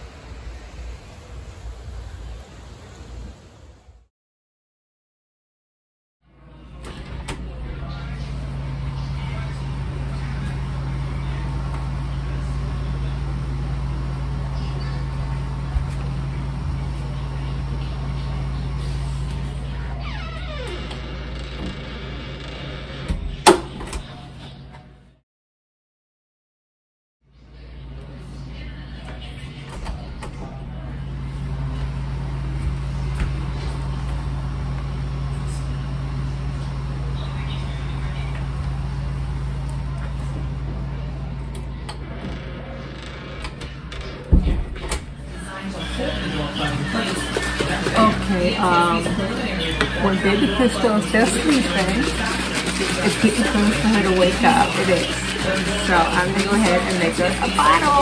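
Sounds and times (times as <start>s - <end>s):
door creaking: 19.7s - 24.2s, 41.8s - 45.3s
door thumping shut: 44.3s - 45.2s.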